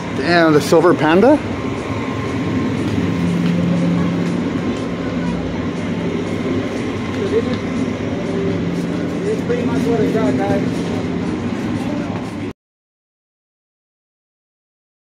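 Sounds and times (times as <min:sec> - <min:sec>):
low engine hum: 0:00.0 - 0:12.5
street traffic: 0:00.0 - 0:12.6.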